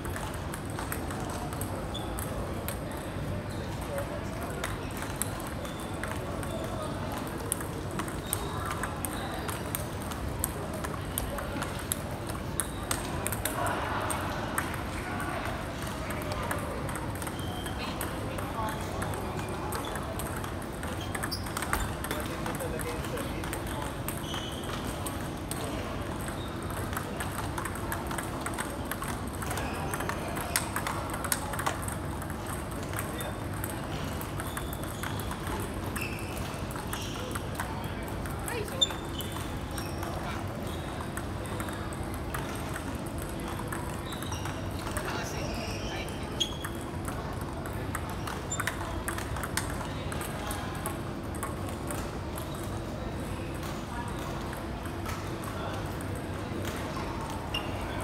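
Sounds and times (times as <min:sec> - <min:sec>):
ping pong ball clicks: 0:00.0 - 0:03.1, 0:03.8 - 0:58.0
murmur of voices: 0:00.0 - 0:58.0.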